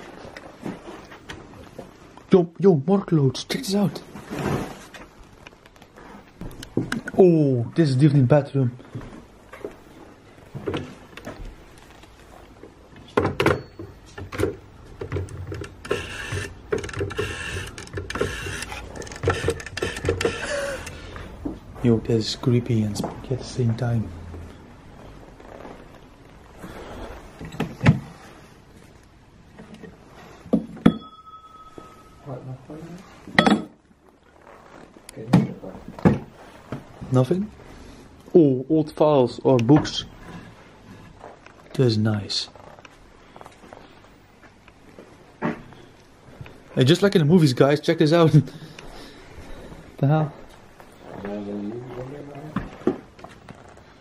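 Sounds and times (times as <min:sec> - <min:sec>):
clothes rustling: 0:00.0 - 0:02.4, 0:03.0 - 0:15.1, 0:20.6 - 0:30.5, 0:31.4 - 0:38.4, 0:39.3 - 0:54.0
metal object ringing: 0:30.9 - 0:32.3.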